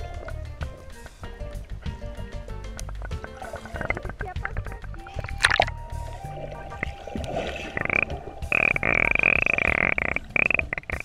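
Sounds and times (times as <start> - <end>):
buzzing underwater drone: 3.0 - 11.0.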